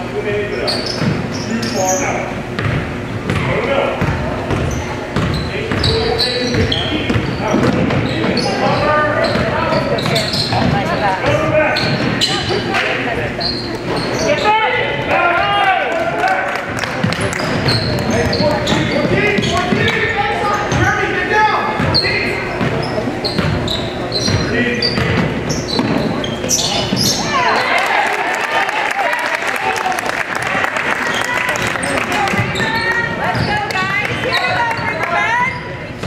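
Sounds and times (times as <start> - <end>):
sneakers squeaking: 0.0 - 28.0, 30.4 - 36.0.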